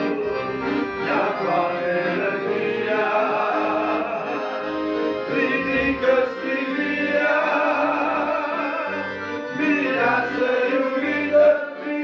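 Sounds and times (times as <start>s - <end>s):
accordion bass notes: 0.0s - 12.0s
men singing in harmony: 0.0s - 12.0s.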